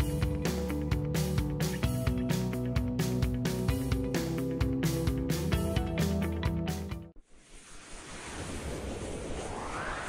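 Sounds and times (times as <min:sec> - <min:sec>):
rising whoosh: 0:07.3 - 0:10.0.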